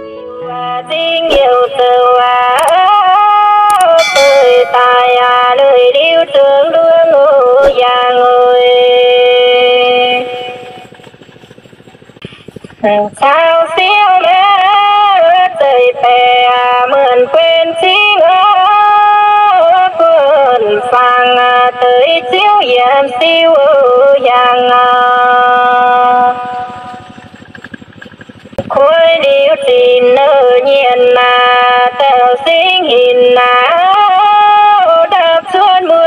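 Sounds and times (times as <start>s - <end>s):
held sung note: 3.8s - 6.0s
faint fast even pulsing: 3.8s - 6.2s, 24.4s - 33.7s
soft low rattling pulse: 25.2s - 30.0s.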